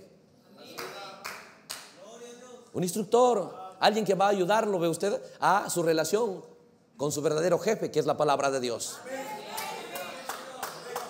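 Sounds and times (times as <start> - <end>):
congregation applauding: 9.3 - 11.0.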